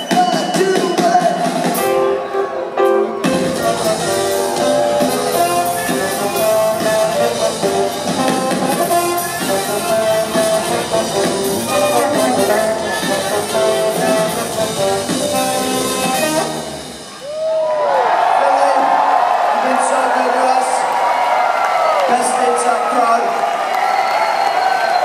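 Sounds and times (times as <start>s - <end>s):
whistle: 0.0s - 1.4s, 23.9s - 25.0s
crowd cheering: 0.0s - 14.6s, 16.6s - 25.0s
live funk band playing: 0.0s - 17.3s
electric piano: 1.8s - 17.0s
electric bass: 3.2s - 16.9s.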